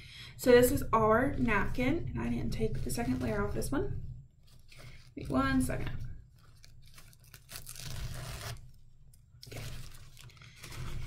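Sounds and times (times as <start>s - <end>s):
paper napkin rustling: 2.4s - 8.8s, 9.4s - 11.0s.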